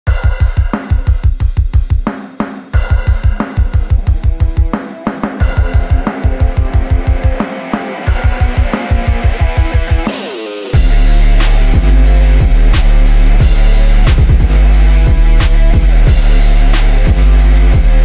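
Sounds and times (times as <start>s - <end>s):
electronic music with heavy beat: 0.1s - 18.0s.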